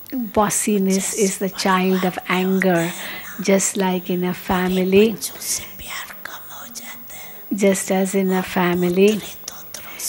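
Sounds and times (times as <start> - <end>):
person whispering into microphone: 4.8 - 7.6, 8.6 - 10.0.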